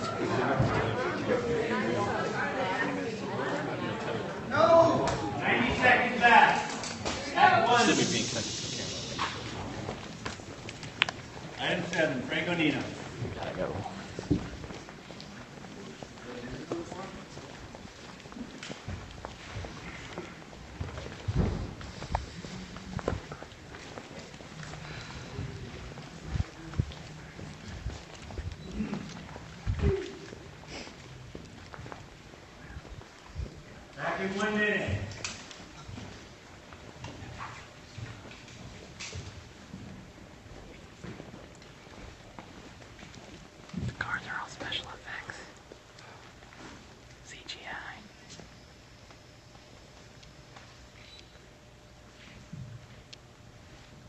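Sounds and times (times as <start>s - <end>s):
footsteps on hard floor: 13.2s - 28.6s
person whispering: 43.9s - 45.6s, 47.2s - 48.4s.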